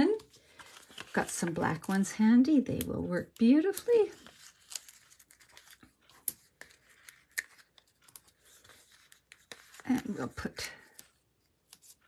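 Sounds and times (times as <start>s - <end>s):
backing sheet crinkling: 0.0s - 12.0s.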